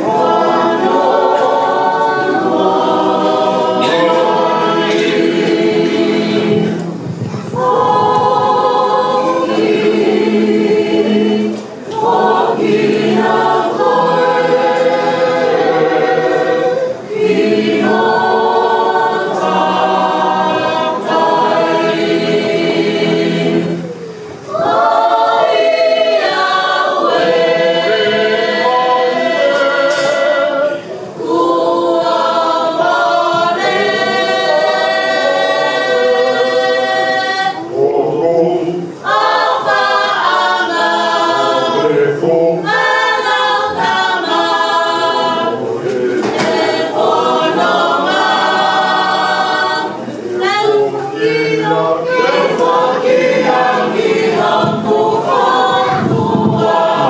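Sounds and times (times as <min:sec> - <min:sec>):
church choir singing a hymn: 0:00.0 - 0:57.0.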